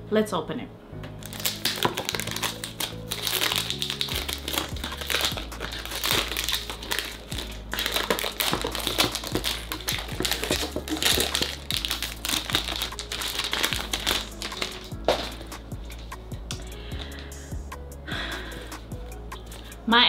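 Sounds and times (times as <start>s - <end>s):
background music with low notes: 0.0s - 20.0s
packaging crinkling: 1.2s - 16.0s.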